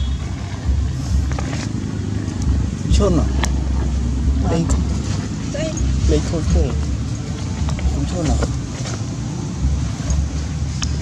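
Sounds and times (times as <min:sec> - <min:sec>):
low uneven rumble: 0:00.0 - 0:11.0.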